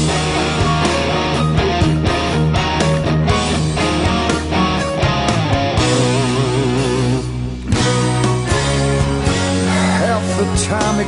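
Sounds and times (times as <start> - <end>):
bass guitar: 0.0 - 11.0
electric guitar: 0.0 - 11.0
keyboards: 0.0 - 11.0
steady drum beat: 0.0 - 11.0.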